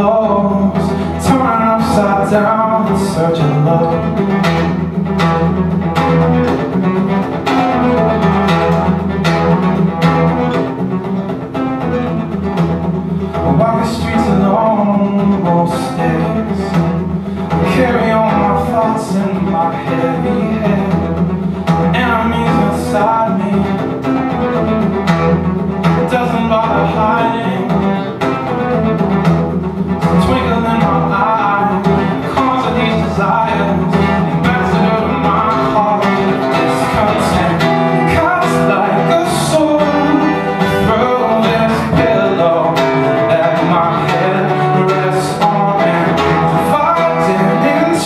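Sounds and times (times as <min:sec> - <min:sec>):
acoustic guitar strumming: 0:00.0 - 0:48.0.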